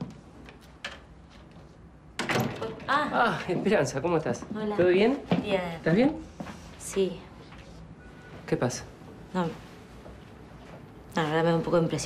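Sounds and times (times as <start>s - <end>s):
wooden door opening with clatter: 2.2s - 3.1s.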